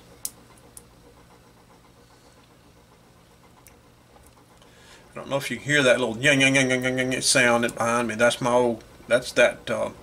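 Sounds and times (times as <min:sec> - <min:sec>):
clock motor whine: 0:00.0 - 0:10.0.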